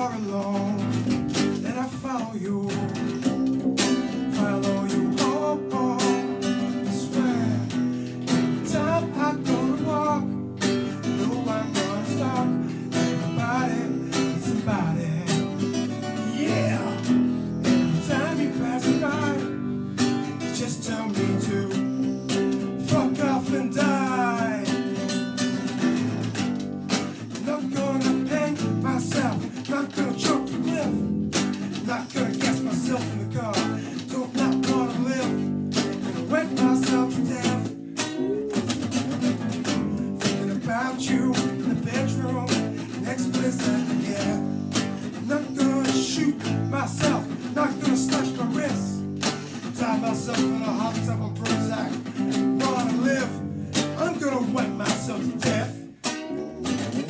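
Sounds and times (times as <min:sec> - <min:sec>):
strummed acoustic guitar: 0:00.0 - 0:57.0.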